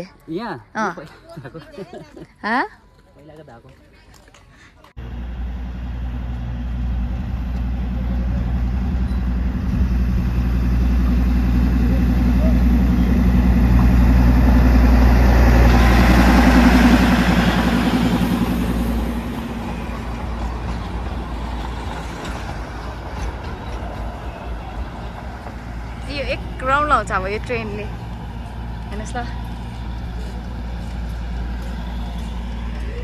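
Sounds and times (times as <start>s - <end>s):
diesel locomotive drone: 4.9s - 33.0s
train wheels rattling on rails: 6.2s - 33.0s.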